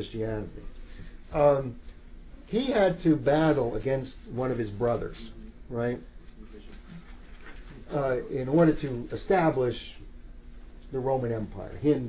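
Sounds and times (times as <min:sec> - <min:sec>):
man speaking: 0:00.0 - 0:01.8, 0:02.4 - 0:07.1, 0:07.7 - 0:10.1, 0:10.9 - 0:12.0
room hiss: 0:00.0 - 0:12.0.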